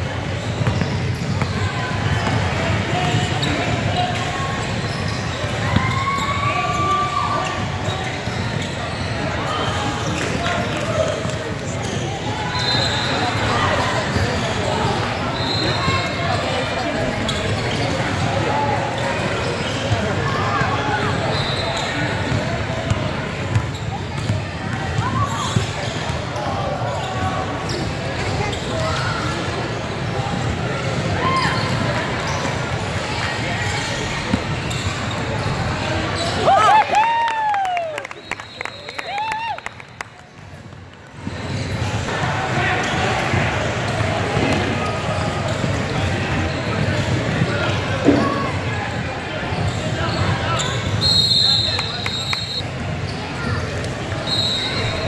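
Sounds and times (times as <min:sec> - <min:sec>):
sneakers squeaking: 0:00.1 - 0:36.6, 0:40.2 - 0:55.0.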